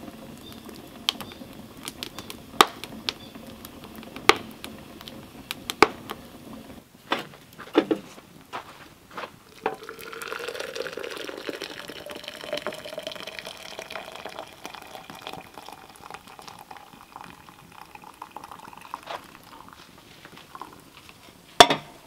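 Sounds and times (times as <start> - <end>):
water pouring into glass: 9.4 - 21.0.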